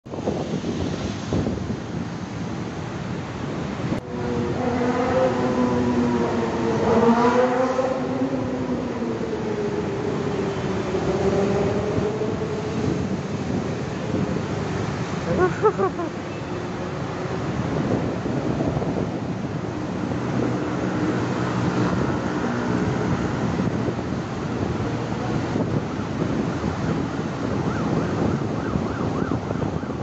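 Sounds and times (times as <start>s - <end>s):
vehicle rumble: 0.1s - 30.0s
droning engine hum: 4.0s - 25.8s.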